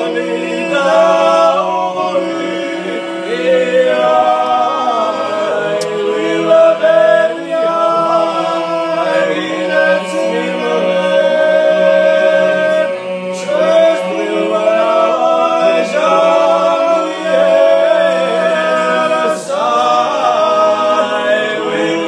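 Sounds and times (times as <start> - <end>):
men singing in harmony: 0.0 - 22.0.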